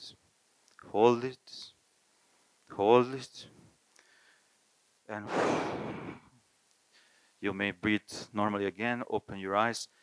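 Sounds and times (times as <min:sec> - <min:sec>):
long breathy sigh: 0:05.3 - 0:06.3.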